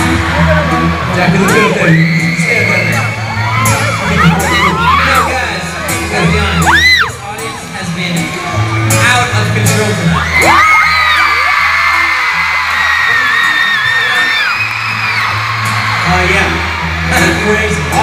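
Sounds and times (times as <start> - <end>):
fans screaming: 0.0 - 9.4, 10.0 - 18.0
pop-rock band through pa: 0.0 - 18.0.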